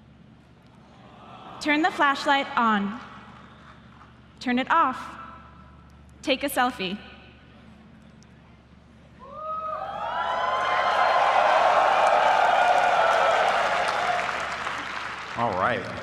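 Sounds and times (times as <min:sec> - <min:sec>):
whoops: 0:09.2 - 0:14.9
audience applauding and cheering: 0:09.7 - 0:16.0.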